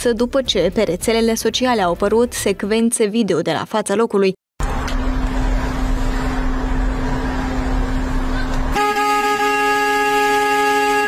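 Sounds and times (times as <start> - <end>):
city street traffic hum: 4.6 - 11.0.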